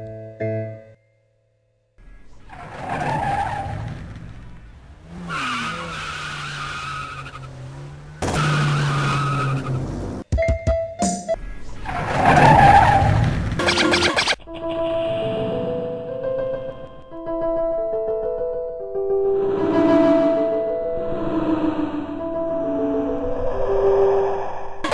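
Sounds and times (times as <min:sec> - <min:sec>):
keyboard music: 0:00.0 - 0:01.3, 0:10.2 - 0:11.4, 0:13.6 - 0:24.2
car engine revving: 0:02.0 - 0:10.2, 0:11.7 - 0:14.1
tyres squealing: 0:02.0 - 0:10.2, 0:11.4 - 0:14.4.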